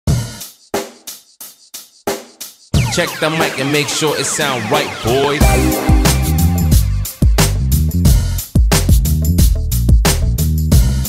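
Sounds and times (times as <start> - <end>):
hip hop drum beat: 0.1 - 11.0.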